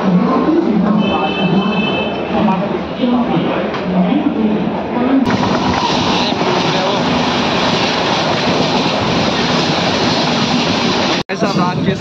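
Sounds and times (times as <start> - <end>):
train wheel and track noise: 0.0 - 12.0.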